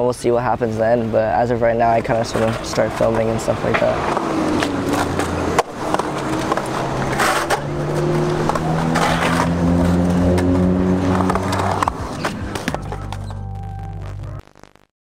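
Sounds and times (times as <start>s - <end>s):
skateboard wheels rolling on concrete: 0.6s - 14.3s
skateboard clacks: 2.0s - 13.3s
background music with held notes: 11.9s - 14.4s.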